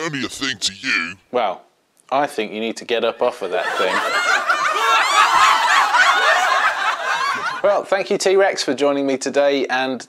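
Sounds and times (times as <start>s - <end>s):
laugh track: 0.0s - 1.2s, 3.3s - 7.7s.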